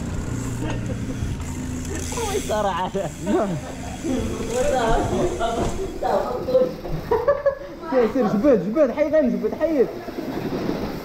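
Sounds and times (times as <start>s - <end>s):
bike tyres rolling on pavement: 0.0s - 11.0s.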